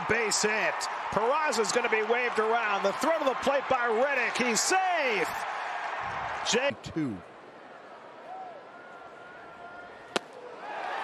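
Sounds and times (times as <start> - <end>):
ball smacking into mitt: 10.1 - 10.4.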